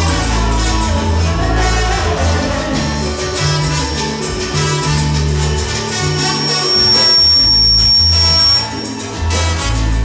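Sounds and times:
bass: 0.0 - 10.0
percussion: 0.0 - 10.0
salsa band playing: 0.0 - 10.0
high whistle-like tone: 6.2 - 9.1.

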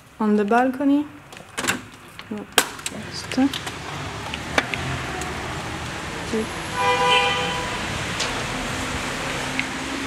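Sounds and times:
street noise: 0.0 - 10.0
vehicle horn: 6.7 - 8.0.

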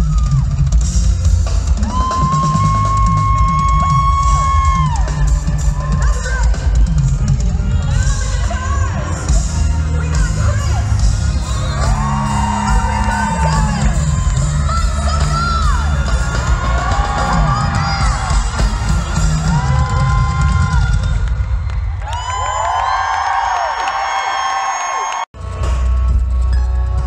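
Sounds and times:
pop concert music with heavy bass: 0.0 - 22.3, 25.4 - 27.0
crowd cheering and screaming: 0.0 - 25.3.

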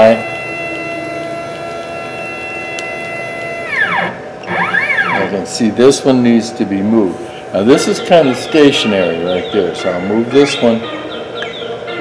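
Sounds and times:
stepper motors whining: 0.0 - 6.1.

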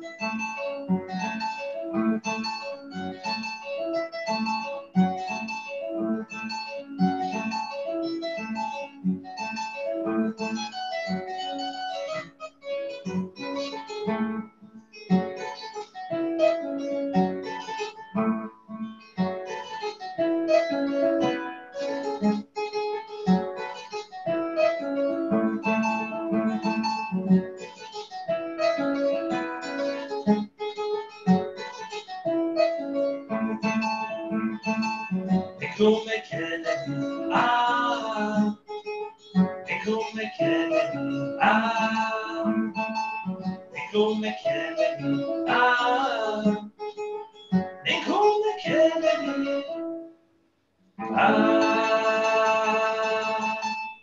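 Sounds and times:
harp plucking: 0.0 - 50.0, 51.0 - 54.0.

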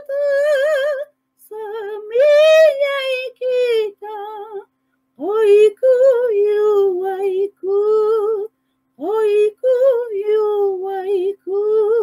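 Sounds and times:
woman singing a cappella: 0.0 - 12.0.

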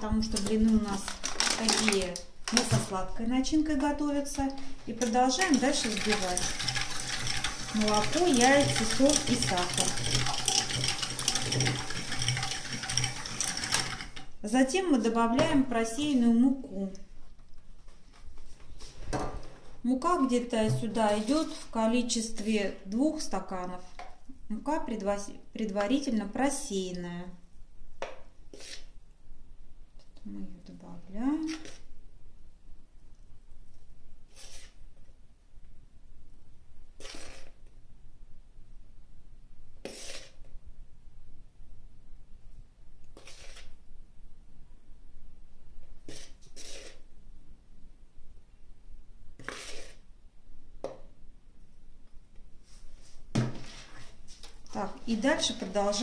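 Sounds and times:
metal spoon scraping a bowl: 5.0 - 14.1, 21.0 - 21.8, 43.2 - 43.7, 46.1 - 47.0
electric hand mixer whisking: 5.0 - 14.3.

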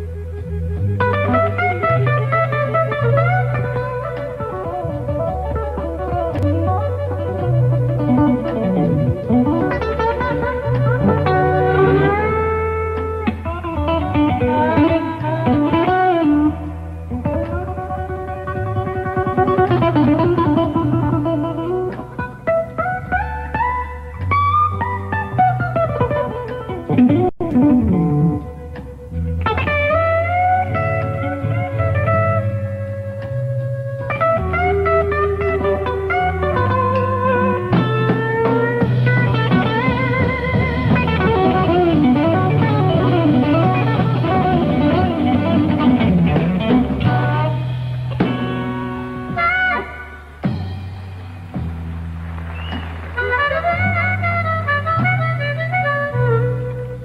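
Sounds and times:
electric guitar lead with bent notes: 0.0 - 57.0
walking bass line: 0.0 - 57.0.

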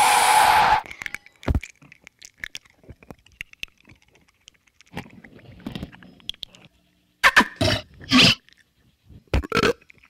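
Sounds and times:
noise bursts: 0.0 - 0.9.

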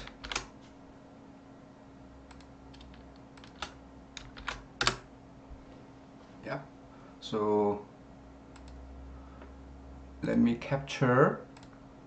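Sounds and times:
computer keyboard keystrokes: 0.0 - 0.5, 2.3 - 5.0, 8.6 - 8.8
faint steady hum: 0.0 - 12.0.

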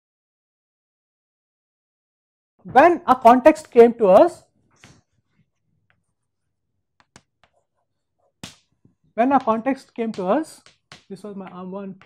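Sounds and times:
chalk taps: 7.0 - 12.0.

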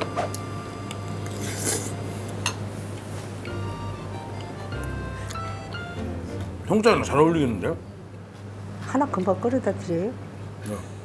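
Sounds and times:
background music with steady tones: 0.0 - 8.2.

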